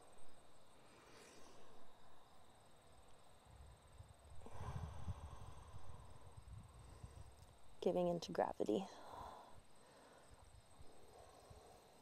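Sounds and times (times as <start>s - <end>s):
wind buffeting microphone: 3.5s - 7.6s.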